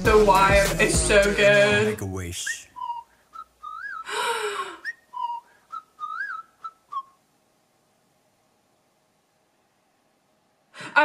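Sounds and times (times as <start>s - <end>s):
whistled tune: 1.9s - 4.1s, 4.8s - 7.2s.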